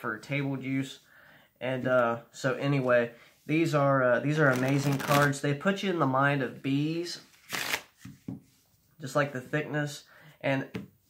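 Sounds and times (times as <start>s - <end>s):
playing cards riffle-shuffled: 4.4s - 5.4s, 7.3s - 8.6s.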